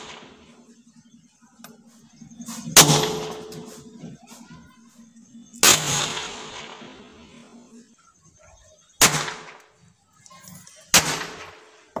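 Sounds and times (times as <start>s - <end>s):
firecracker bangs: 2.7s - 3.8s, 5.6s - 7.0s, 9.0s - 9.6s, 10.9s - 11.6s.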